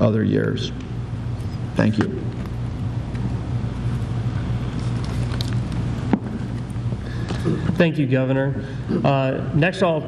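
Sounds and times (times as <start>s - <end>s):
room noise hum: 0.0s - 10.0s.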